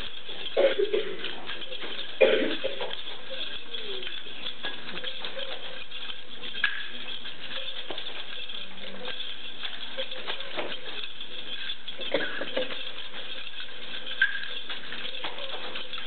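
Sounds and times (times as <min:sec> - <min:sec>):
nunchaku clacks and smacks: 0:00.0 - 0:16.0.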